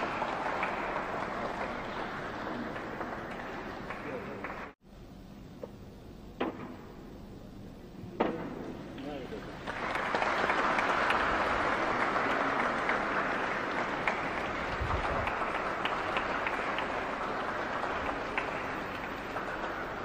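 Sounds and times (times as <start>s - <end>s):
audience applauding: 0.0s - 4.8s, 9.0s - 20.0s.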